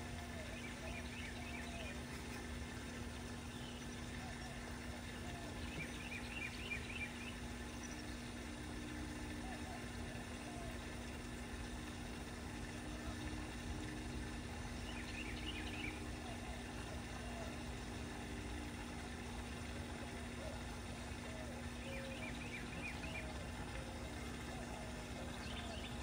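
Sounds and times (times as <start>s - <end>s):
bird chirps: 14.8s - 16.1s.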